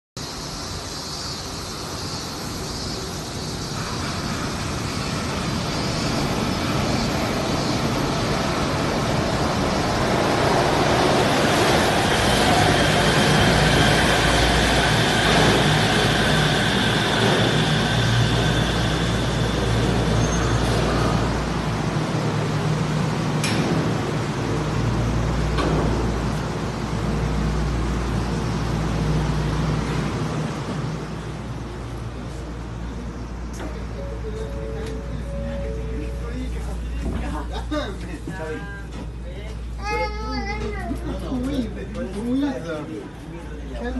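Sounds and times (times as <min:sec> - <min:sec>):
monorail train running: 0:00.2 - 0:43.9.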